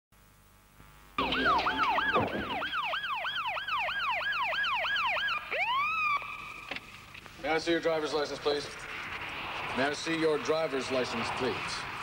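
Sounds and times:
electronic police siren: 1.2 - 6.7.

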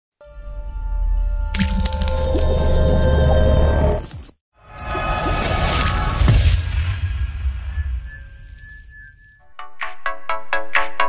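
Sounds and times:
paint splat sound effect: 1.6 - 2.6.

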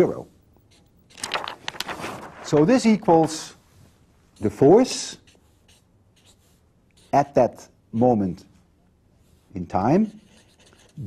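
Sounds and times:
pen scratching while writing: 4.4 - 7.4, 9.2 - 11.0.

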